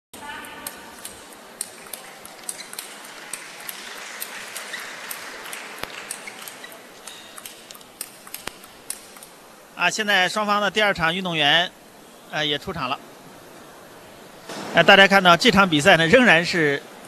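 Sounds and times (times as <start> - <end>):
table tennis balls clicking: 0.5 - 9.4.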